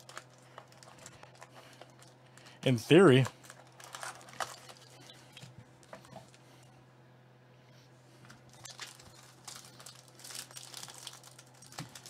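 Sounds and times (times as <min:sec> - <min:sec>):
foil wrapper crinkling: 0:00.0 - 0:05.3, 0:08.3 - 0:12.0.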